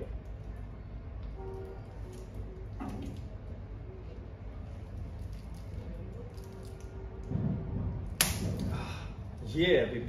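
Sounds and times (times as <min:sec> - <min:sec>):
plastic film snapping: 0:08.2 - 0:08.8.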